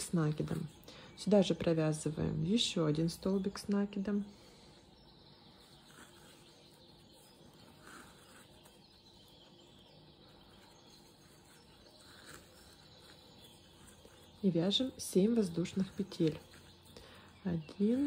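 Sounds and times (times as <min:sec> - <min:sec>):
faint soft sounds: 0:00.0 - 0:18.0.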